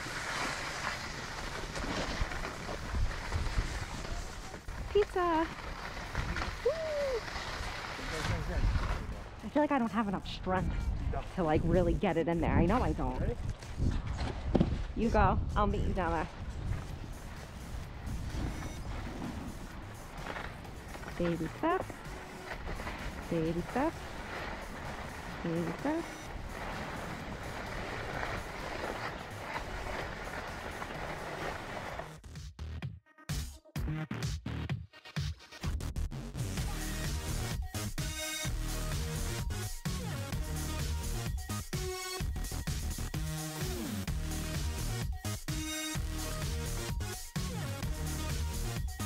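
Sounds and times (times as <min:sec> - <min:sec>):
skis scraping on snow: 0:00.0 - 0:10.6, 0:11.2 - 0:32.2
wind on microphone: 0:10.4 - 0:20.0.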